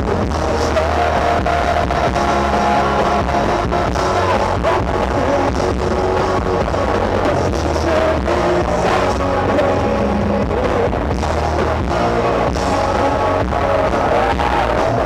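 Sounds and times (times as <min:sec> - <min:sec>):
electric guitar: 0:00.0 - 0:15.0
rock band playing live: 0:00.0 - 0:15.0
steady drum beat: 0:00.0 - 0:15.0.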